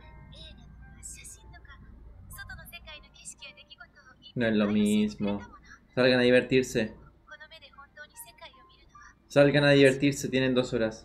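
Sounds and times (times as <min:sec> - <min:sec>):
soft background music: 0:00.0 - 0:11.0
woman speaking muffled: 0:00.3 - 0:06.0, 0:07.0 - 0:09.2.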